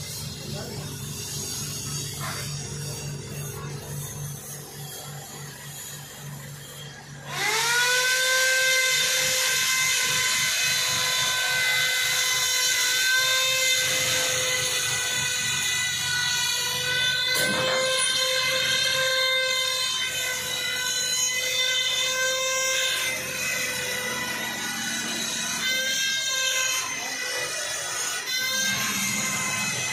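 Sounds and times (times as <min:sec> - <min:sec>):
crane motor pulsing hum: 0:00.0 - 0:29.9
high-pitched crane whine: 0:00.0 - 0:29.9.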